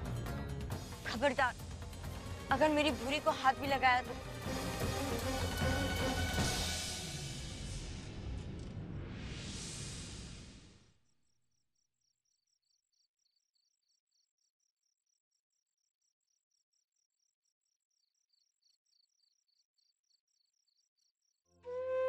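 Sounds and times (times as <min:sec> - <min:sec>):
music with long held tone: 0:04.0 - 0:08.9
faint crickets chirping: 0:11.0 - 0:21.6.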